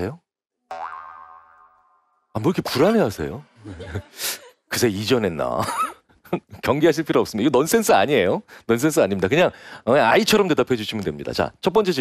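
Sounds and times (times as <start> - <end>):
comic boing sound effect: 0.7 - 2.2.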